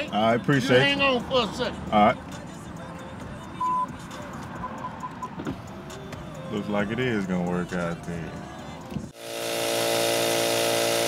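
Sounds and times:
electronic beeps: 3.6 - 4.0.

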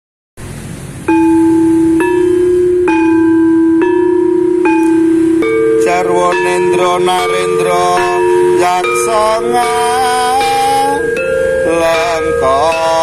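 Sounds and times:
gamelan ensemble playing: 1.0 - 13.0
metallophone struck: 1.0 - 13.0.

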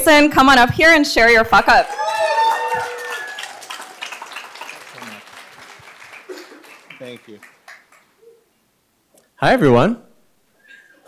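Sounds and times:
audience applauding: 1.8 - 8.3.

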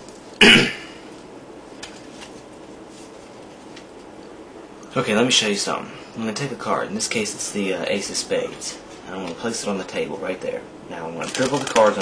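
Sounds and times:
low room hiss: 0.0 - 12.0
man clearing throat: 0.4 - 1.0.

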